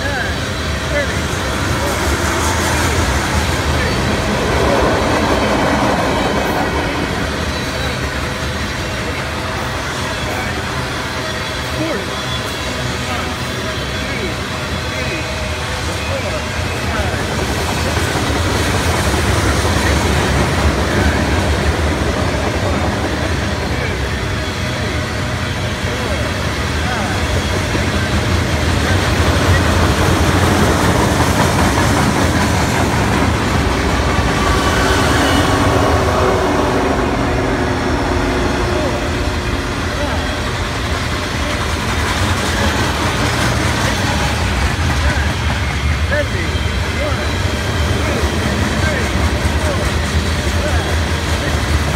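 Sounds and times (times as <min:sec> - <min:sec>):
diesel locomotives passing: 0:00.0 - 0:51.9
freight train rumble and rattle: 0:00.0 - 0:51.9.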